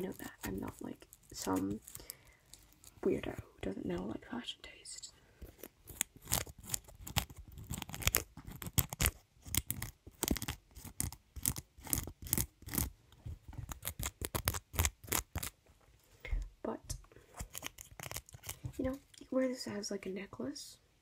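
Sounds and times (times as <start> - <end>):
crisp snipping and crackling handling: 0.0 - 3.4, 5.4 - 12.9, 13.5 - 15.6, 17.4 - 19.3.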